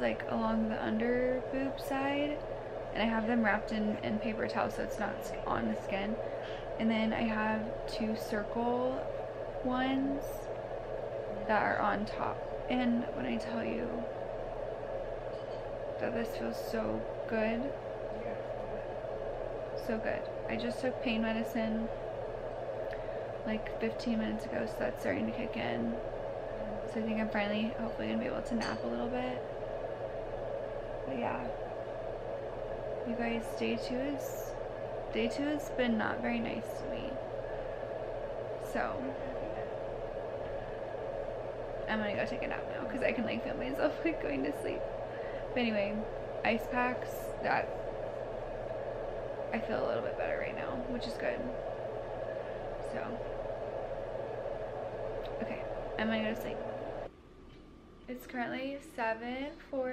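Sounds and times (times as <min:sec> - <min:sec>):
woman speaking: 0:00.0 - 0:10.5, 0:11.3 - 0:14.1, 0:16.0 - 0:17.8, 0:19.8 - 0:22.0, 0:23.4 - 0:26.0, 0:26.6 - 0:29.5, 0:31.0 - 0:31.6, 0:33.0 - 0:37.3, 0:38.6 - 0:39.8, 0:41.9 - 0:47.8, 0:49.5 - 0:51.6, 0:52.8 - 0:53.2, 0:55.2 - 0:56.8, 0:58.1 - 0:59.9
steady hiss: 0:00.0 - 0:57.1
steady background hum: 0:00.0 - 0:59.9.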